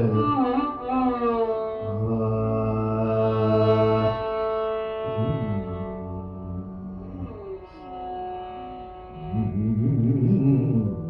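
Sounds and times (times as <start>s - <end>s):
long held note gliding down: 0.0s - 11.0s.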